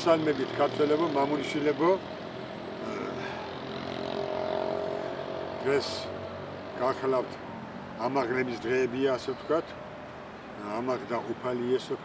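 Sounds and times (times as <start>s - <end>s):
engine drone: 0.0s - 8.6s.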